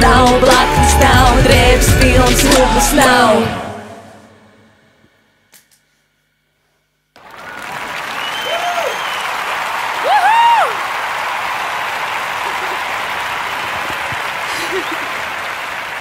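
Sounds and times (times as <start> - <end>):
applause: 7.2 - 16.0
whooping cheers: 7.2 - 16.0.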